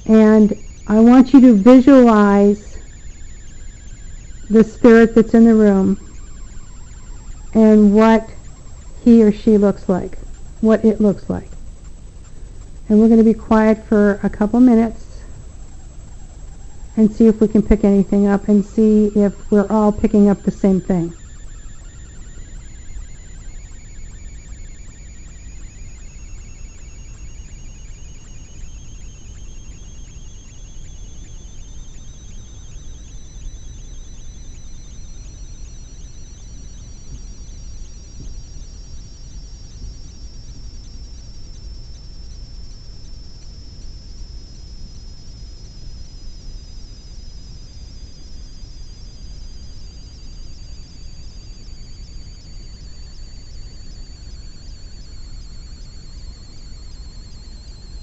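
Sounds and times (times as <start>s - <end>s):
sliding electronic tones: 0.0s - 58.0s
steady low hum: 0.0s - 58.0s.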